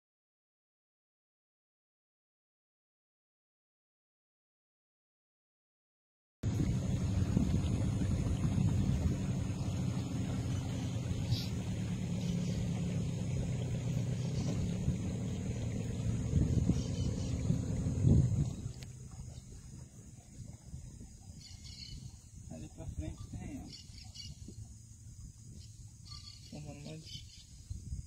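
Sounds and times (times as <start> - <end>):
motorboat engine droning: 6.4 - 28.0.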